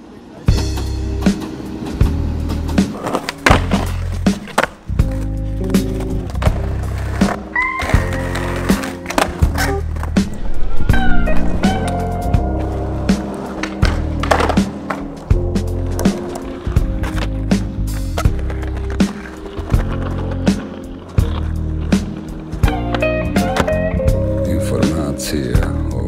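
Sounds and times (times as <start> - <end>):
skateboard wheels rolling: 0.0 - 26.0
skateboards clacking: 0.1 - 26.0
background music with bass: 0.5 - 26.0.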